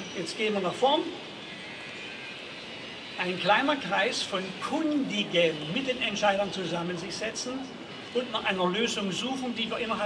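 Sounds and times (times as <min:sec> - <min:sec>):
city square background noise: 0:00.0 - 0:10.0.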